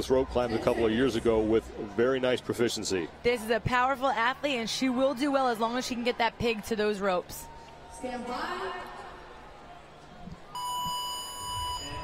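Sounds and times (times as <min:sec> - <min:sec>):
electronic start beep: 0:10.6 - 0:12.0.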